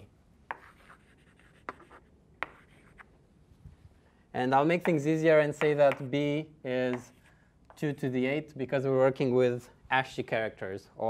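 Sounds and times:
chalk tapping on board: 0.5 - 3.1, 4.8 - 6.1, 6.9 - 7.8
chalk scratching on blackboard: 0.5 - 3.2.

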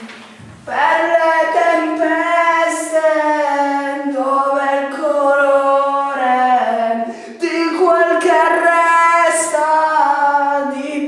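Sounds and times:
young man singing unaccompanied: 0.6 - 11.0.

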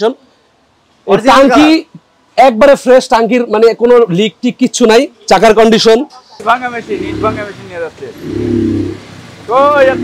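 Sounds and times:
people's voices: 3.7 - 8.4, 9.4 - 10.0.

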